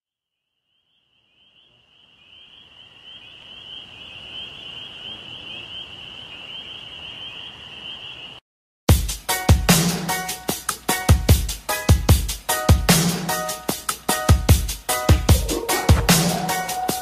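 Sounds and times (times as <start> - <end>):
chirring chorus of calling animals: 15.3 - 17.0.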